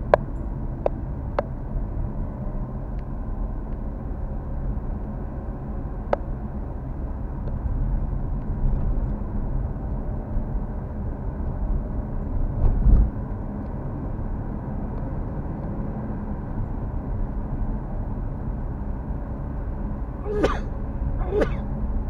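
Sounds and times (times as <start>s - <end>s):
car interior road rumble: 0.0s - 22.0s.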